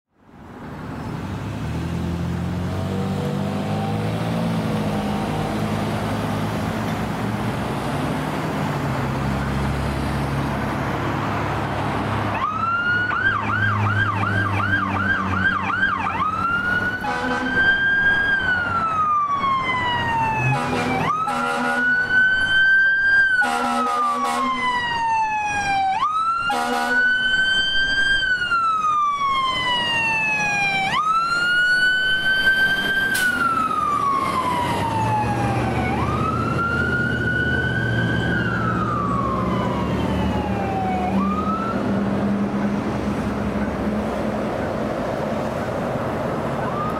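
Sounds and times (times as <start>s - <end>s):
diesel fire engine rumbling: 0.3s - 46.9s
electronic siren: 12.3s - 42.0s
horn blasts: 17.0s - 17.6s, 20.5s - 21.9s, 23.4s - 24.6s, 26.5s - 27.1s.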